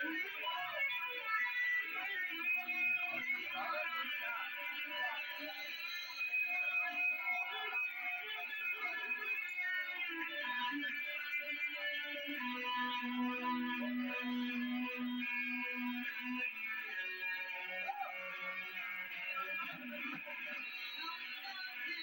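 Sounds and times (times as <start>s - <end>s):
distorted electric guitar: 0.0s - 22.0s.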